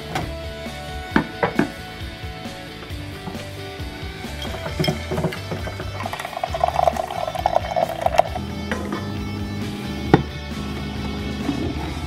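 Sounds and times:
background music: 0.0 - 12.0
coffee maker pump buzzing: 4.4 - 8.5
coffee streaming into tumbler: 4.4 - 8.5.

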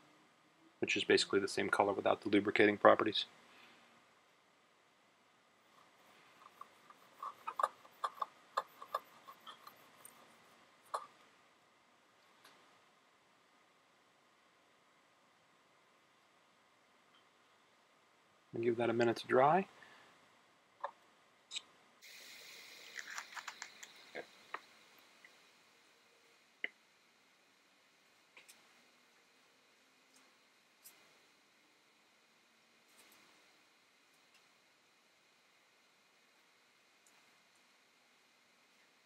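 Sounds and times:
low steady hiss: 0.0 - 39.0
swab scrubbing paper: 6.4 - 10.4.

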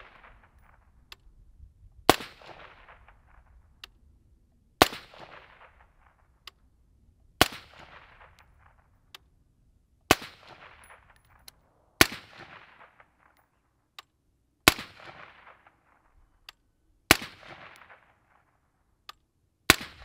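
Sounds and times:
gunshot echo: 0.0 - 1.0, 2.1 - 3.6, 4.8 - 6.4, 7.4 - 8.9, 10.1 - 11.4, 12.0 - 13.4, 14.6 - 16.0, 19.7 - 20.0
suppressed rifle shots: 0.0 - 1.3, 2.1 - 4.0, 4.8 - 6.6, 7.4 - 9.4, 10.1 - 13.4, 14.6 - 16.2, 17.1 - 18.4, 19.7 - 20.0.

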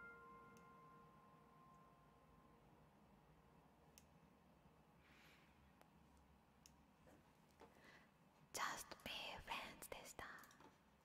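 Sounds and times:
woman whispering: 8.6 - 10.6.

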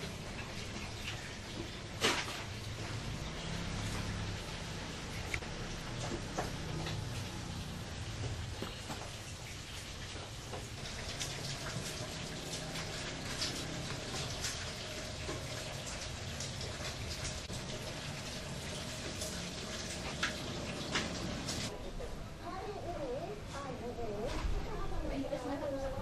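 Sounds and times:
water boiling in steamer: 0.0 - 21.8.

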